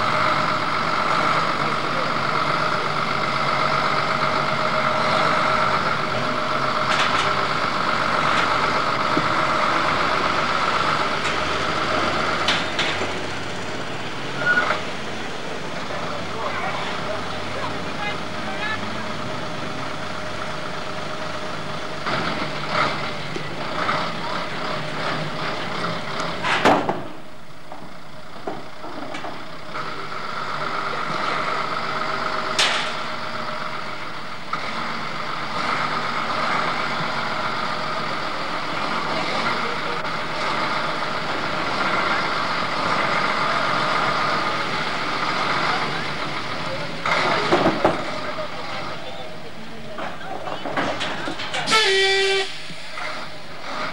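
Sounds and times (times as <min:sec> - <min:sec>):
indistinct voices: 0:00.0 - 0:26.5, 0:28.4 - 0:53.9
truck engine running: 0:00.0 - 0:53.9.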